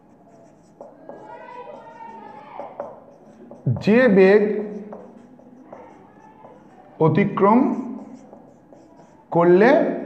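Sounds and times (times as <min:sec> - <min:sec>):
marker squeaking on whiteboard: 0:00.0 - 0:10.0.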